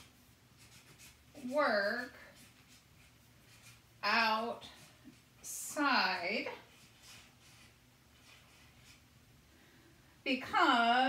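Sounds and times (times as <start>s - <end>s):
marker writing on paper: 0.0s - 9.0s.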